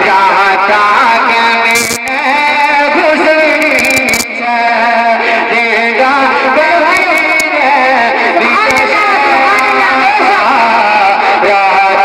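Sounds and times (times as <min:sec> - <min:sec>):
man singing into microphone: 0:00.0 - 0:12.0.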